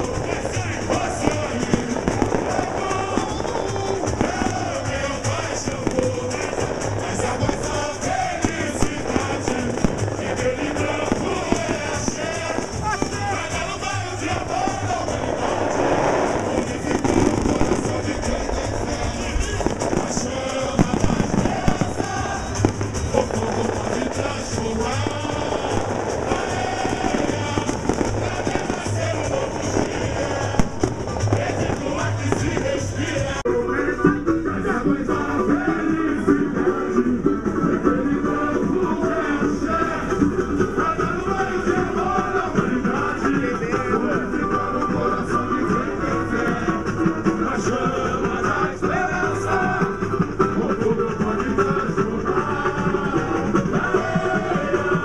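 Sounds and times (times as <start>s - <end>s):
samba percussion: 0.0s - 33.5s, 34.6s - 55.0s
crowd voices and singing: 0.0s - 55.0s.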